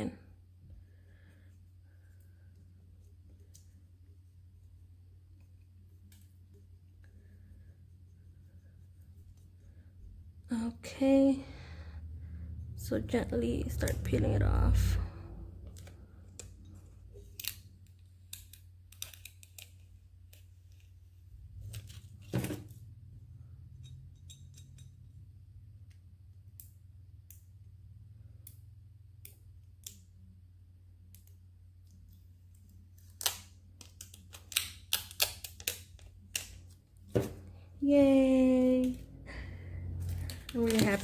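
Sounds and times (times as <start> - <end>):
steady low hum: 0.0 - 18.9, 36.2 - 41.0.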